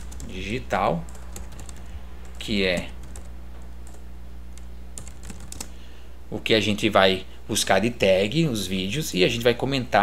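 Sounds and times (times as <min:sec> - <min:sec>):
low electrical hum: 0:00.0 - 0:10.0
computer keyboard keystrokes: 0:04.6 - 0:05.7.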